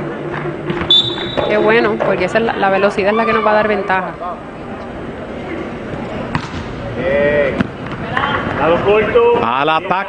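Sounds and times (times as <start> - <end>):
arena crowd noise: 0.0 - 10.0
volleyball smack: 6.3 - 6.7.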